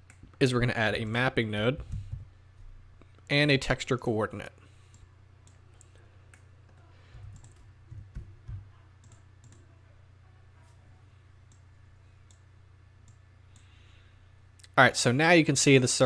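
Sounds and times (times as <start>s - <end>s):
low electrical hum: 0.0s - 16.0s
soft low thumps: 1.8s - 2.8s, 7.2s - 8.8s
computer mouse clicks: 7.2s - 9.6s
keyboard keystrokes: 7.2s - 9.6s.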